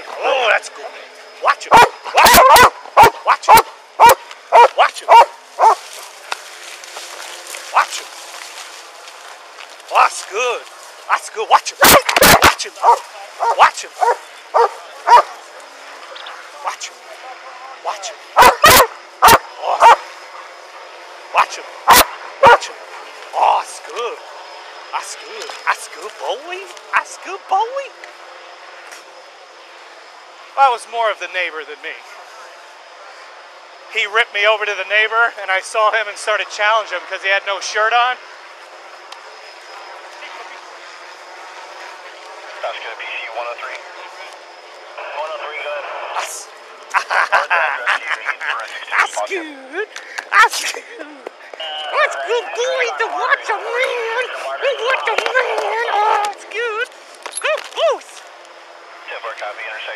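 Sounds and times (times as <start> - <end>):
outdoor background noise: 0.0 - 59.9
dog barking: 1.6 - 5.8, 11.8 - 15.4, 18.4 - 20.0, 21.9 - 22.7.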